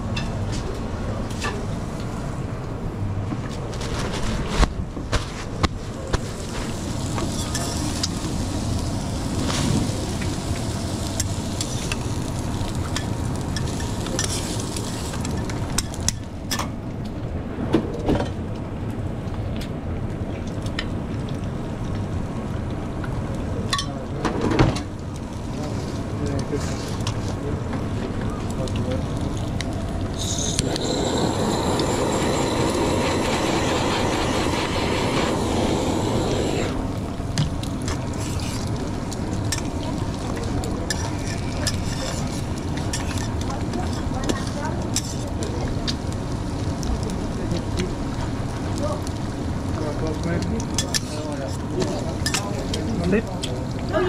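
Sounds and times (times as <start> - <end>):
gas torch roaring: 0.0 - 54.0
eggs sizzling on a griddle: 6.0 - 16.6, 28.4 - 54.0.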